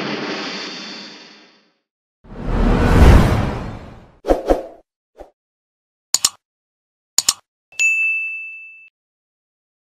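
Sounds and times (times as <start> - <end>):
mouse double-click: 6.2 - 6.4, 7.2 - 7.4
bright bell ding: 7.8 - 8.9.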